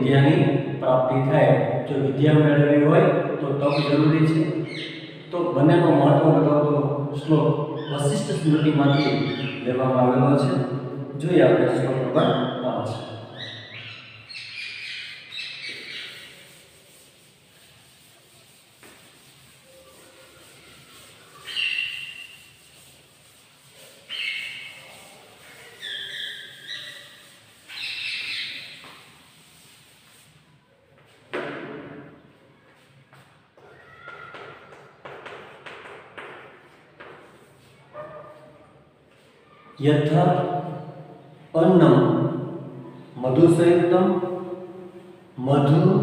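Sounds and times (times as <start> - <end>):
chalk squeak: 3.7 - 5.2, 7.8 - 9.7, 12.3 - 30.4
chalk scraping on blackboard: 14.3 - 32.2, 34.3 - 39.3.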